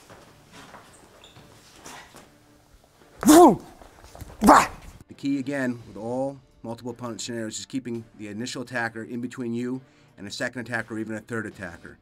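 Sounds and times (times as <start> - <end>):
man shouting: 3.2 - 3.7, 4.4 - 4.7.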